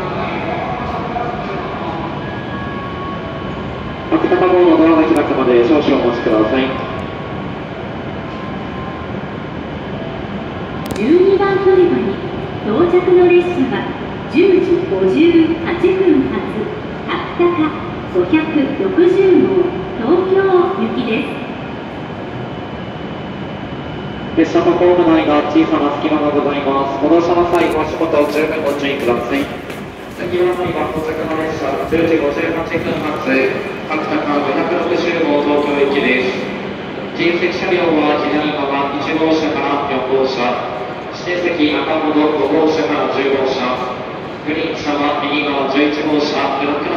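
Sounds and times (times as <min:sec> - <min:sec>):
train running noise: 0:00.0 - 0:46.9.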